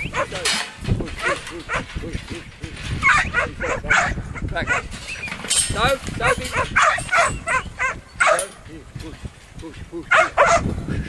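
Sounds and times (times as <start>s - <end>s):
dog barking: 1.2s - 1.8s, 3.0s - 4.9s, 6.5s - 8.5s, 10.1s - 10.7s.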